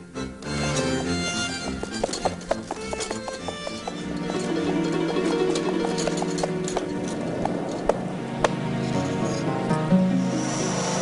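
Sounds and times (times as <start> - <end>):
background music with held tones: 0.0 - 11.0
hoof clip-clop: 1.6 - 9.1.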